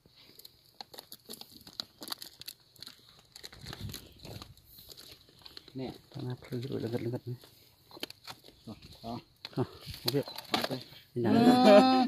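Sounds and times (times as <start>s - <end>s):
soil crumbling and trickling: 0.0s - 10.8s.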